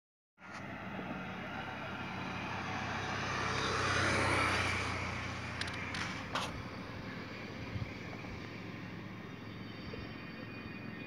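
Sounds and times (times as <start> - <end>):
vehicle passing: 0.5 - 9.3.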